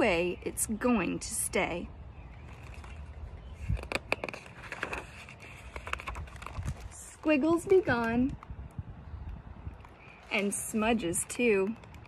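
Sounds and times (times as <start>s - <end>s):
book page turning: 2.4s - 8.3s.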